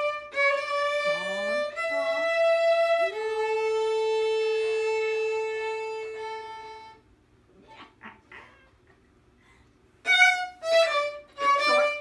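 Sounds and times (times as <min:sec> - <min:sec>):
violin long bowed note: 0:00.0 - 0:07.0, 0:10.0 - 0:12.0.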